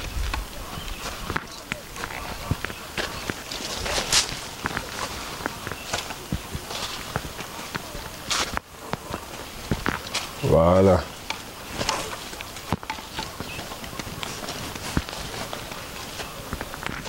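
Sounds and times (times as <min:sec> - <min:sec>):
footsteps on soil: 0:00.0 - 0:17.0
leaves rustling against body: 0:00.0 - 0:17.0.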